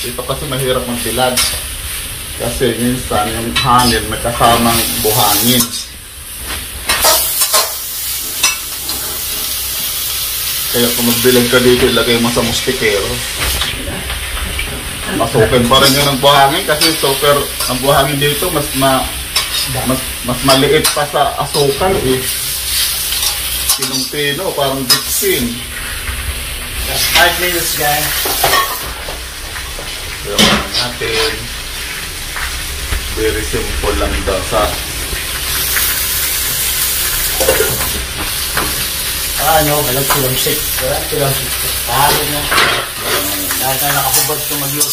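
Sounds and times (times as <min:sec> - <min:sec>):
pork skin sizzling in oil: 0:00.0 - 0:44.9
utensil scraping a wok: 0:04.8 - 0:10.2, 0:19.2 - 0:19.9, 0:22.2 - 0:24.0.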